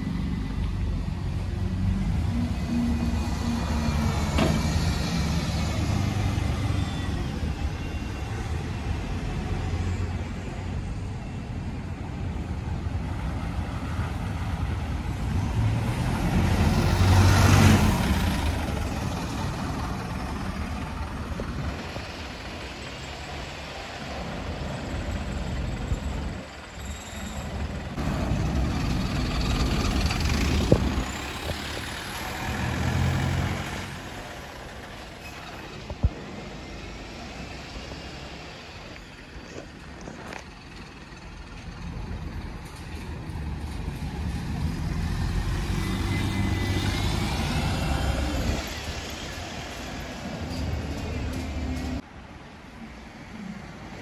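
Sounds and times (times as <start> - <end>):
bus engine rumble: 0.0 - 54.0.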